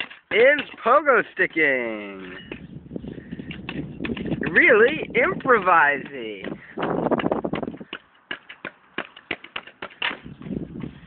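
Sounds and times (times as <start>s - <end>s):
metal blade tapping pavement: 0.0s - 1.0s, 3.3s - 11.0s.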